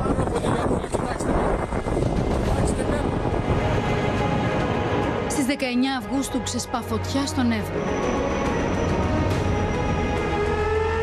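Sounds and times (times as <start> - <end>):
loud steady rumbling: 0.0 - 7.1
faint background music: 0.0 - 10.9.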